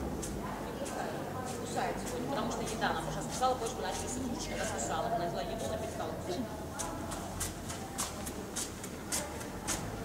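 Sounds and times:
footsteps on artificial turf: 0:06.7 - 0:10.0.

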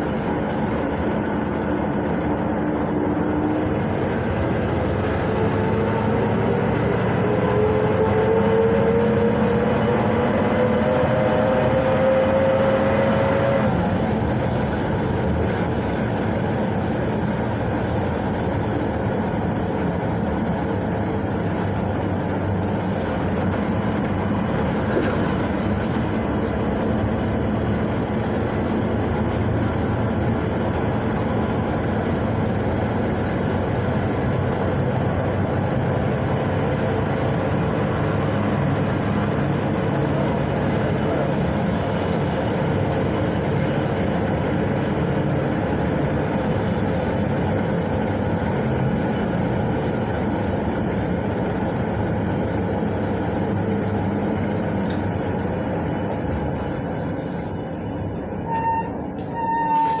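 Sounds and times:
bus engine running: 0:00.0 - 1:00.0
road noise: 0:00.0 - 1:00.0.

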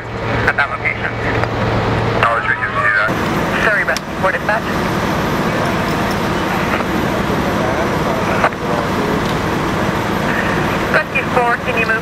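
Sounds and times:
traffic rumble: 0:00.0 - 0:12.0
vehicles idling: 0:00.0 - 0:12.0
faint voices: 0:02.2 - 0:12.0.

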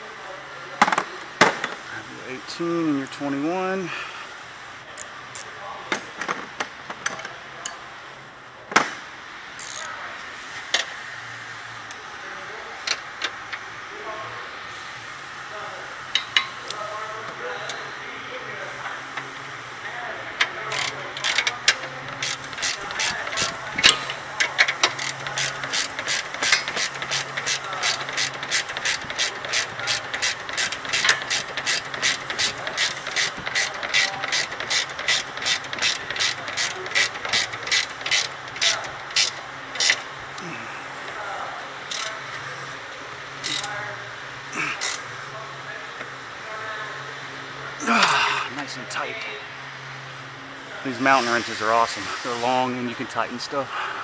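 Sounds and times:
ratcheting wrench clicking: 0:09.6 - 0:09.9, 0:16.1 - 0:16.8, 0:20.4 - 0:40.1, 0:41.9 - 0:42.3, 0:43.4 - 0:43.8, 0:44.8 - 0:45.1.

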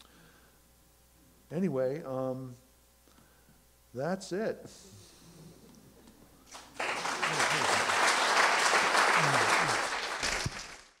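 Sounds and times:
audience applauding: 0:06.5 - 0:11.0.

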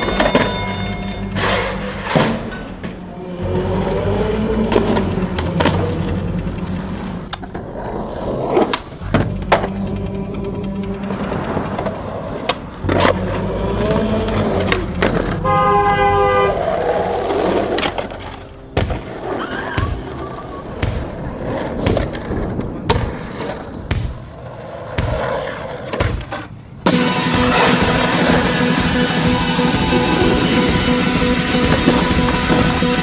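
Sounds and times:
loud guitar music: 0:00.0 - 0:07.3, 0:26.8 - 0:33.0
skateboard wheels rolling on concrete: 0:00.0 - 0:33.0
skateboard scraping concrete ledge: 0:16.4 - 0:28.7.

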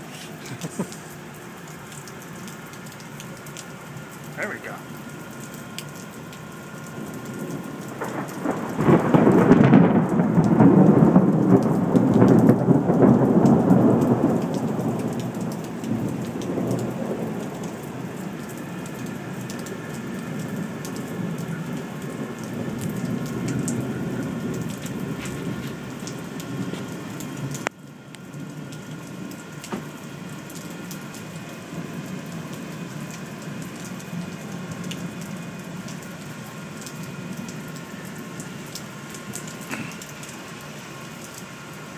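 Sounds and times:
heavy rain: 0:00.0 - 0:41.9
thunder rumbling: 0:06.9 - 0:27.7.

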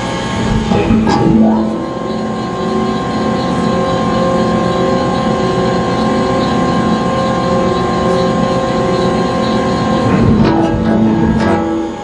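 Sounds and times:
conveyor machinery humming and rattling: 0:00.0 - 0:12.0.

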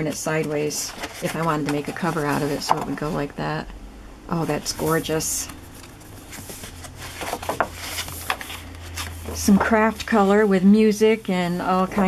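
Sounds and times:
paper rustling and flapping: 0:00.0 - 0:02.8, 0:04.6 - 0:10.4
low steady hum: 0:00.0 - 0:12.0.

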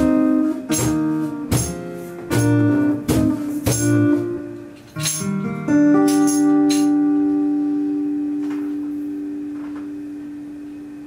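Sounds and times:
keyboard and acoustic guitar chord: 0:00.0 - 0:11.0.

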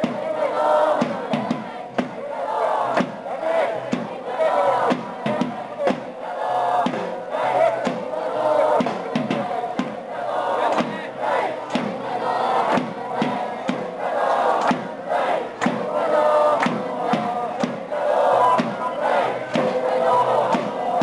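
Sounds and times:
crowd chanting in unison: 0:00.0 - 0:21.0
steady beat: 0:00.0 - 0:21.0.

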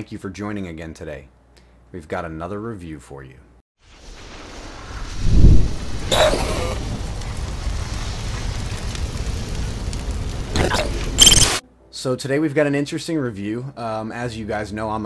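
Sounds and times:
low rumble: 0:03.9 - 0:11.2.

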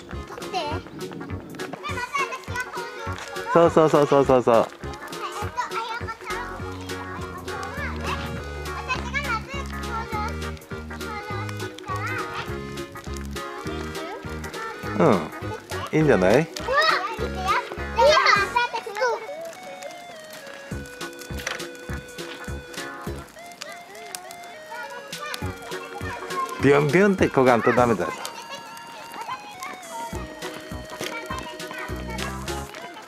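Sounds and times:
background music with beat: 0:00.0 - 0:33.0
young children calling and chattering: 0:00.0 - 0:33.0
child making wordless calls: 0:13.6 - 0:16.0, 0:23.5 - 0:26.6.

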